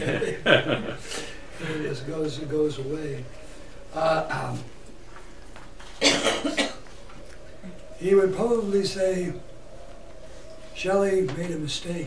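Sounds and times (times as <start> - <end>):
person coughing: 6.0 - 6.9.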